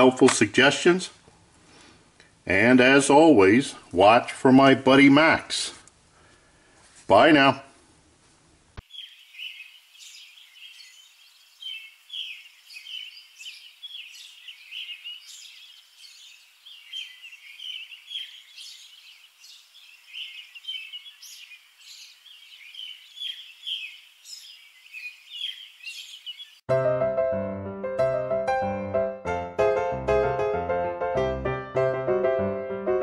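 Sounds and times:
small birds chirping: 0:08.8 - 0:26.7.

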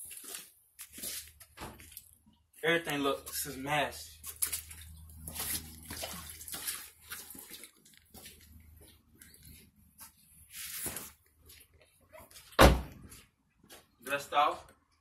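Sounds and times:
rustling and shuffling: 0:04.2 - 0:14.0.

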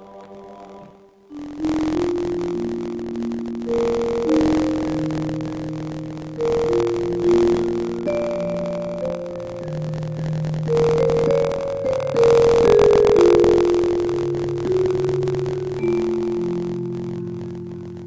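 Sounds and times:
slow piano passage: 0:00.0 - 0:18.0.

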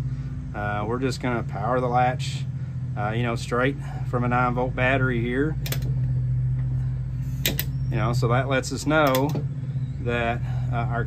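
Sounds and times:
steady low hum: 0:00.0 - 0:11.0
solenoid latch clicking: 0:05.6 - 0:06.0, 0:07.4 - 0:07.7, 0:09.0 - 0:09.5.

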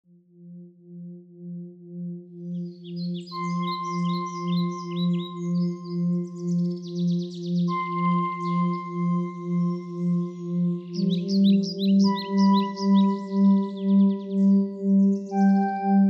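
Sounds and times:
singing bowl drone: 0:00.3 - 0:16.0
bird-like chirps: 0:02.6 - 0:16.0.

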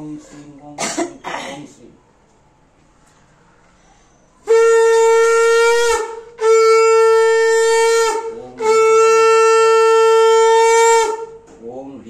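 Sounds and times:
conch shell blown: 0:04.4 - 0:11.6.

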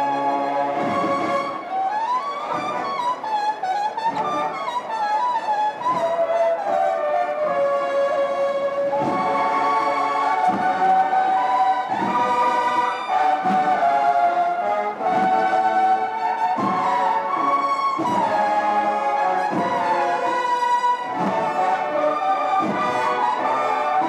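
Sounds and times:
brass band playing slow march: 0:00.0 - 0:24.0.

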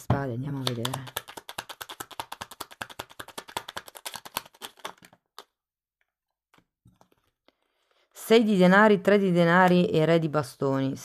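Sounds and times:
cards shuffling: 0:00.5 - 0:05.5
cards tapped down: 0:00.6 - 0:05.5.

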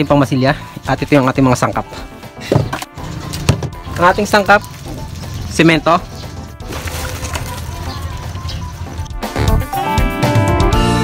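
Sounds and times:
faint background music: 0:00.0 - 0:10.4
cement bag rustling and crackling: 0:02.9 - 0:09.2
cement powder pouring: 0:03.8 - 0:09.1.

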